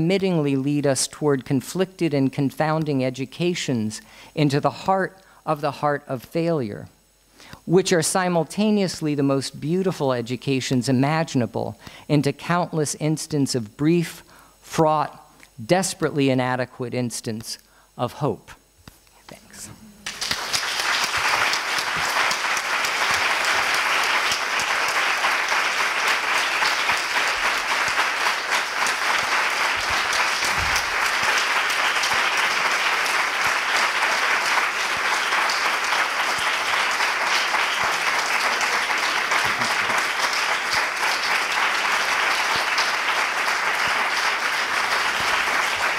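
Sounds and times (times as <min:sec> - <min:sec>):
audience applauding: 0:20.0 - 0:45.9.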